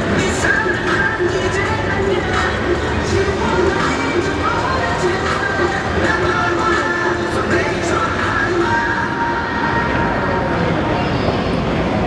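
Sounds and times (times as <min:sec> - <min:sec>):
voices: 0:00.0 - 0:12.0.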